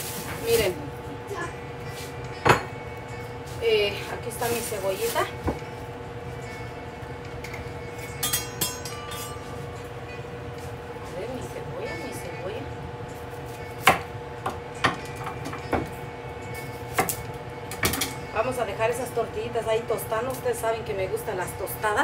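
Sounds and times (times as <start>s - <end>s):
steady background hum: 0.0s - 22.0s.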